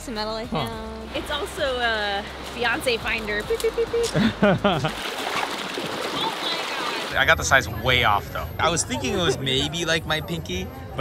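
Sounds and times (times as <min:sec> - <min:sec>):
dog splashing through water: 0:04.9 - 0:07.1
water rushing over stones: 0:04.9 - 0:07.2.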